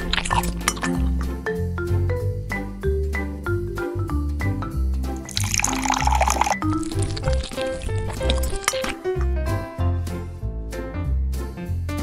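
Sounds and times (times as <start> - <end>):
utensil clinking against glass bowl: 0.0 - 1.3, 5.2 - 9.3
background music with steady beat: 0.5 - 5.3, 9.0 - 12.0.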